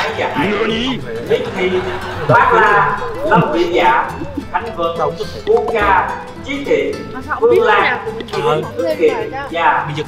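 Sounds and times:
background music: 0.0 - 10.0
voices talking and exclaiming: 0.0 - 10.0.

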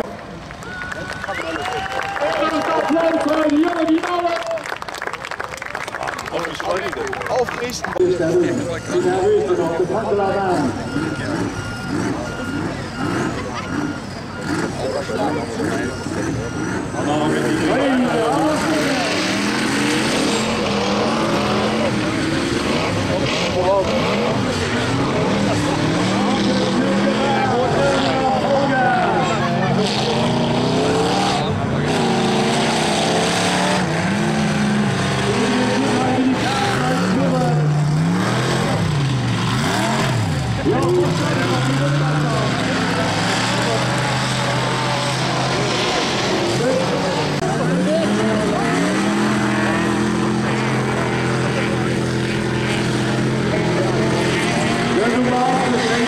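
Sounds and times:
combine harvester engines revving: 0.0 - 56.0.

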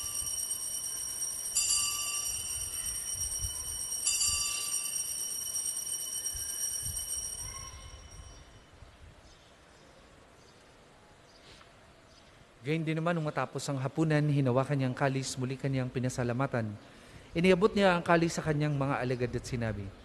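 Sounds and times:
altar bells ringing: 0.0 - 8.7.

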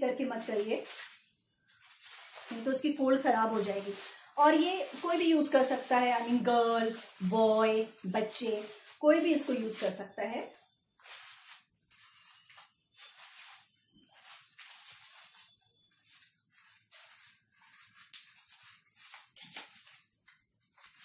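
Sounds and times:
umbrella fabric rustling: 0.0 - 21.0.

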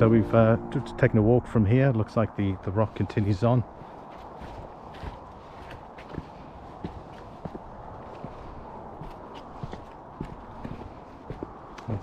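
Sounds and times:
footsteps on rock: 3.8 - 11.6.

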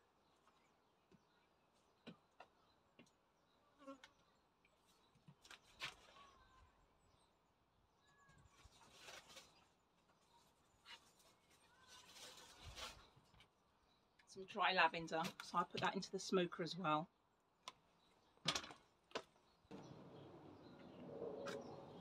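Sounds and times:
faint rustling of gear: 8.2 - 14.2.

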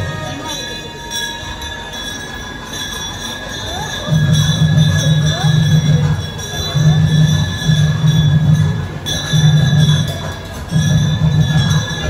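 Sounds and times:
crowd noise: 0.0 - 12.0
temple bells ringing: 0.0 - 12.0.

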